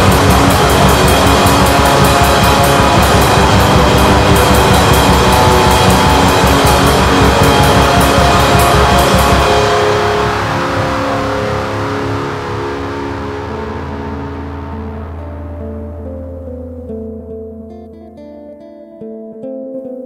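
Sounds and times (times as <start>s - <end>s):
fast drums with cymbal hits: 0.0s - 11.7s
dense distorted guitars: 0.0s - 18.7s
atmospheric black metal music: 0.0s - 20.0s
sustained guitar chords ringing: 0.0s - 20.0s.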